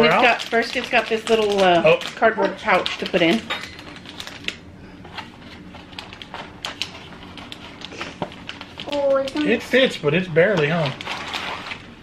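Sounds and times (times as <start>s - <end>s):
plastic bag crinkling: 0.0s - 4.6s, 5.2s - 12.0s.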